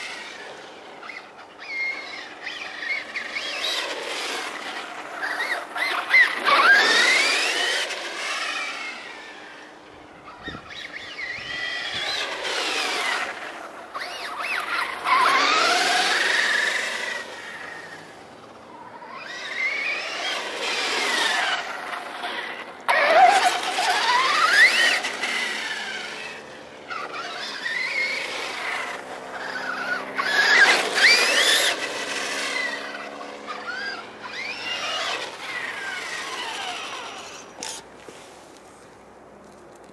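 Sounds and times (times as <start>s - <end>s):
toy truck electric motor whining: 0.0s - 38.8s.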